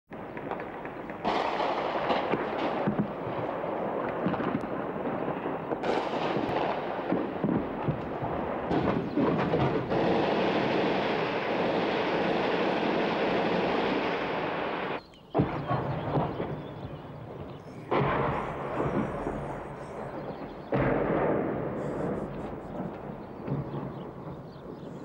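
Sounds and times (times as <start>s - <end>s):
shell explosions: 0.1s - 25.0s
gunfire cracks: 0.3s - 25.0s
dense steady rumbling: 14.1s - 25.0s.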